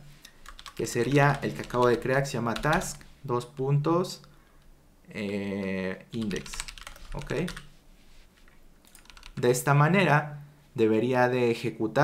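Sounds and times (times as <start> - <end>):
faint keyboard keystrokes: 8.8 - 9.4.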